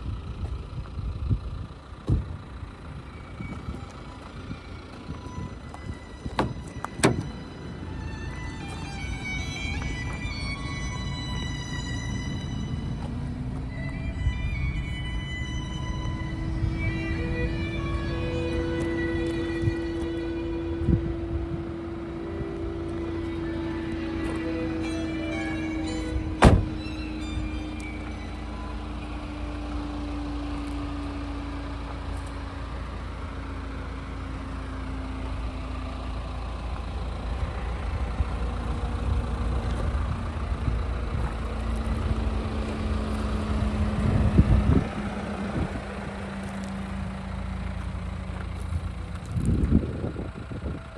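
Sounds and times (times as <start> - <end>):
low vehicle hum: 0.0 - 50.9
classical music from car radio: 4.4 - 29.2
car door shutting: 6.2 - 7.5, 23.3 - 28.8.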